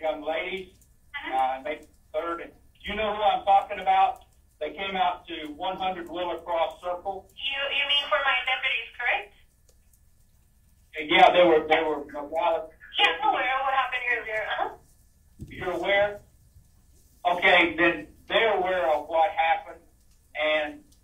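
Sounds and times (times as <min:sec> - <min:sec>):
voices over a telephone line: 0:01.2 - 0:09.4, 0:11.0 - 0:14.8, 0:17.3 - 0:19.8, 0:20.4 - 0:20.8.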